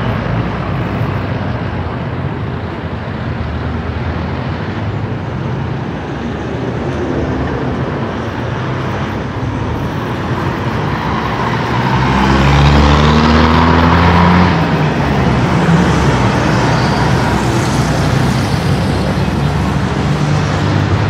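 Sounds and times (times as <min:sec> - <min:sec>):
road traffic: 0:00.0 - 0:21.0
vehicle passing close by: 0:06.5 - 0:21.0.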